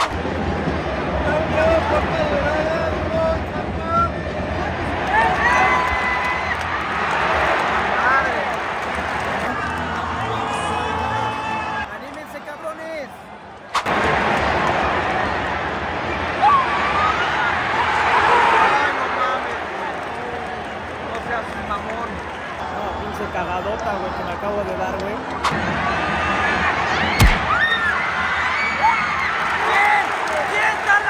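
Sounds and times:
stadium crowd shouting and chanting: 0.0 - 31.0.

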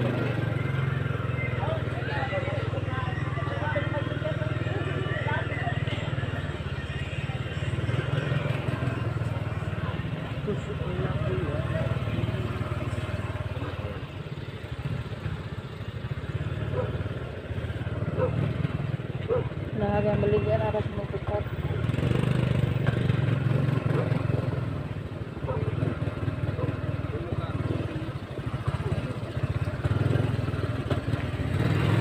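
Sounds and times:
motorcycle engine rumbling: 0.0 - 32.0
road noise on microphone: 0.0 - 32.0.

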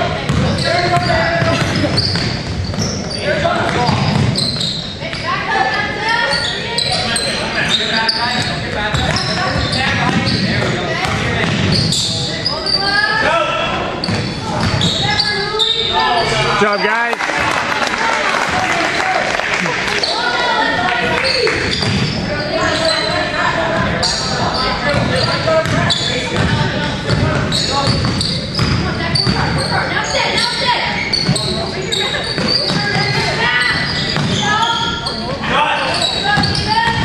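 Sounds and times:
basketball bouncing on court: 0.2 - 5.2, 8.3 - 11.9, 14.0 - 15.2, 21.2 - 22.2, 24.8 - 29.7, 32.2 - 33.2, 33.9 - 34.5, 36.3 - 37.0.

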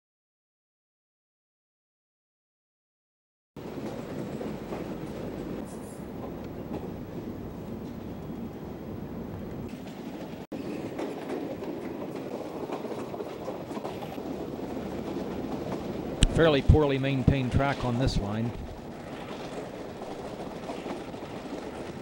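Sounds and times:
train clatter: 3.6 - 22.0
train wheels rumbling on track: 3.6 - 22.0.

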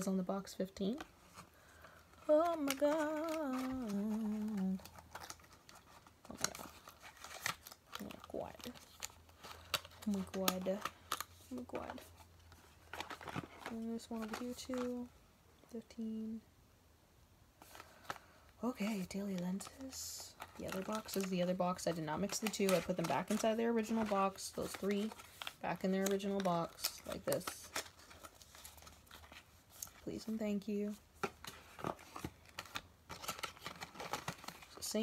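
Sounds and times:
woman speaking: 0.0 - 1.1, 8.0 - 8.8, 10.0 - 10.9, 11.5 - 12.1, 13.7 - 15.1, 15.7 - 16.4, 18.6 - 27.8, 30.0 - 31.0, 34.8 - 35.0.

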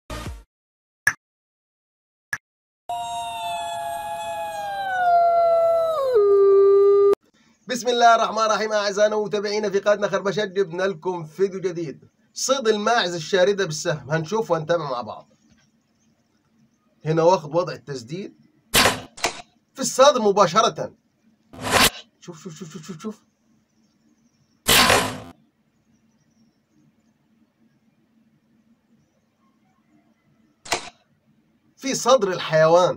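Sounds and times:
wolf howling: 2.9 - 7.2
bow shot: 18.8 - 19.4, 21.6 - 22.0, 24.7 - 25.3, 30.7 - 31.0.

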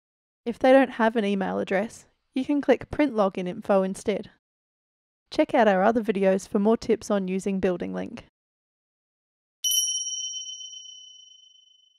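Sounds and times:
electronic bell-like ding: 9.6 - 11.9.

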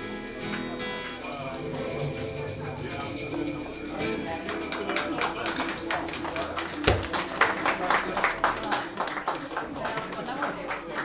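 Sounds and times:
audience voices: 0.0 - 11.0
audience clapping: 3.4 - 11.0.

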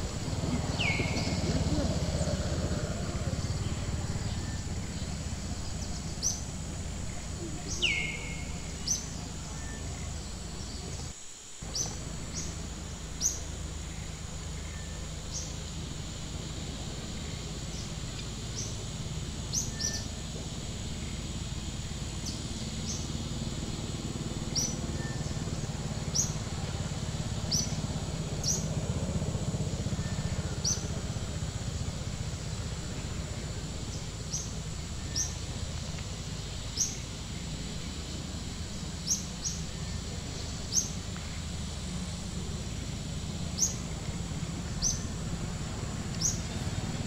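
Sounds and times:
bird chirping: 0.0 - 15.6, 44.8 - 45.1
low outdoor rumble: 0.0 - 47.0.

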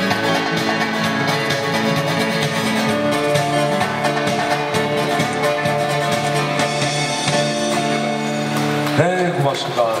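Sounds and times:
man speaking over loudspeakers: 9.0 - 10.0.

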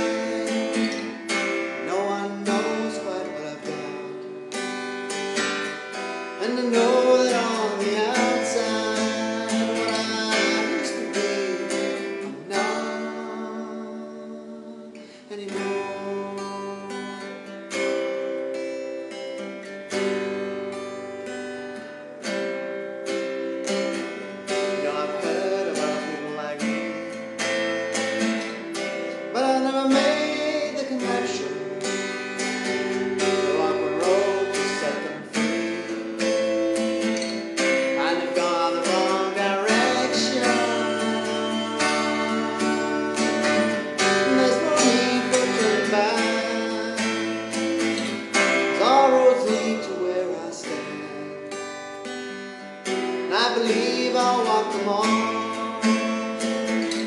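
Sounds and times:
person singing: 0.0 - 4.6, 5.7 - 19.0, 24.1 - 27.3, 28.6 - 36.6, 37.2 - 51.6, 53.0 - 57.0
acoustic guitar strumming: 0.0 - 57.0.

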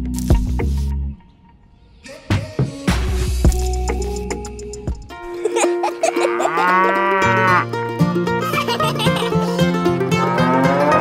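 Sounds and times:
light background music: 0.0 - 11.0
cow mooing: 6.3 - 7.7, 10.1 - 11.0.

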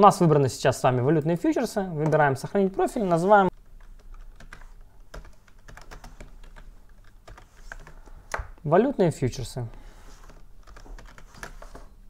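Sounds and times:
computer keyboard typing: 3.5 - 8.6, 10.2 - 11.9.

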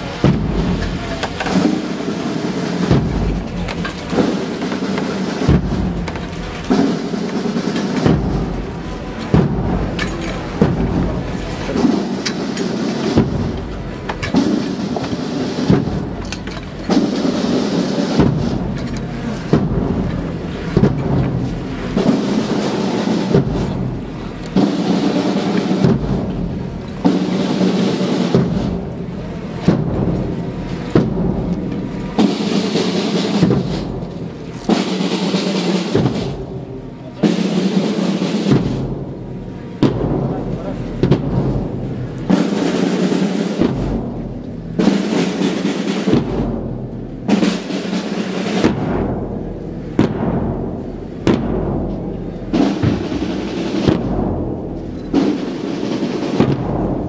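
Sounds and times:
band playing funeral march: 0.0 - 57.0
heavy drum beat: 0.0 - 57.0.

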